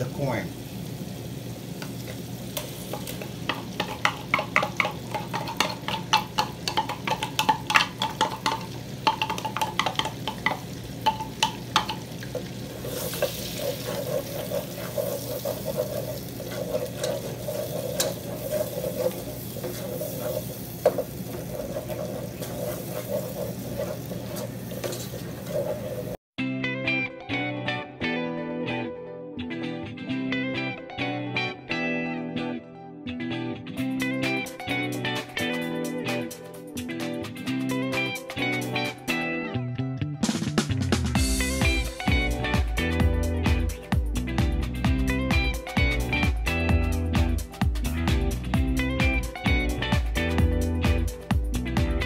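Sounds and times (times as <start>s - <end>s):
corn sizzling in butter: 0.0s - 26.2s
wooden spoon stirring in pot: 2.9s - 26.2s
taps and knocks in pot: 3.5s - 12.0s.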